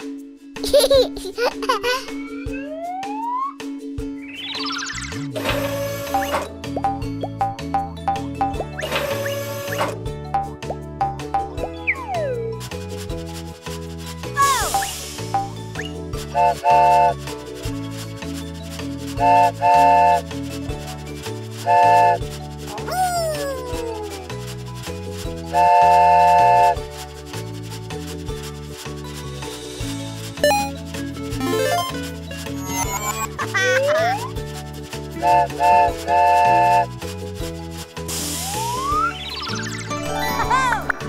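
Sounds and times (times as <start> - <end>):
bouncy children's music: 0.0 - 41.0
toy steam-train whistle toots: 5.4 - 6.4, 8.9 - 10.0, 16.3 - 17.2, 19.2 - 20.2, 21.6 - 22.2, 25.5 - 26.8, 35.2 - 36.9, 38.2 - 39.2.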